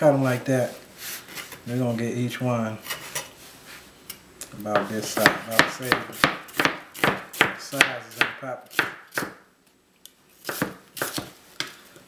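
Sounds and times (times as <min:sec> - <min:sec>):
knife chopping on cutting board: 0:04.8 - 0:09.4, 0:10.4 - 0:11.8.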